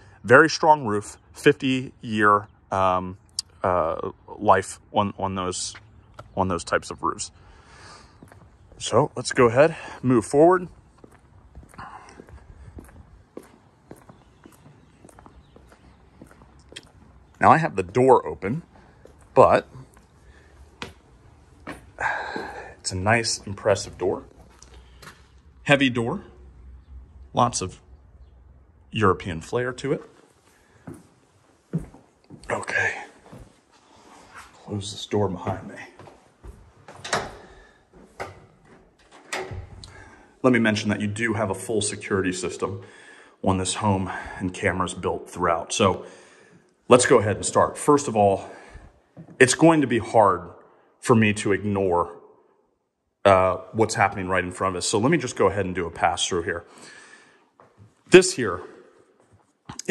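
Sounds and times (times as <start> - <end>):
footsteps on stone paving: 8.1 - 9.0, 10.6 - 22.7, 23.3 - 25.4, 30.1 - 32.6
heavy door shutting with thud: 36.9 - 40.1.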